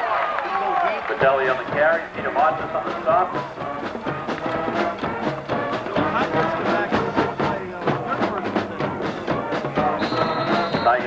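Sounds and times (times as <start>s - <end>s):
music with steady beat: 1.2s - 11.0s.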